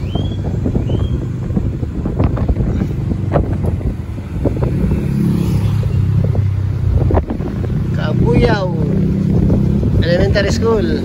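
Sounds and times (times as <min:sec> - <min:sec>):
vehicle engine and road noise: 0:00.0 - 0:11.0
wind buffeting microphone: 0:00.0 - 0:11.0.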